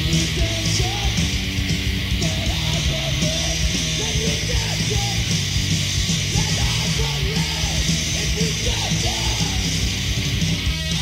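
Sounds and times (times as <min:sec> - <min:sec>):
bass guitar: 0:00.0 - 0:11.0
distorted electric guitar: 0:00.0 - 0:11.0.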